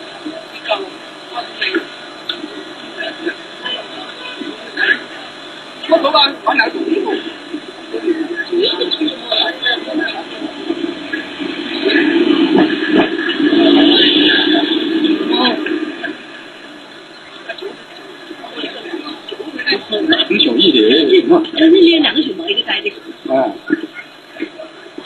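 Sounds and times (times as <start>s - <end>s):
indistinct chatter of voices: 0.0s - 25.0s.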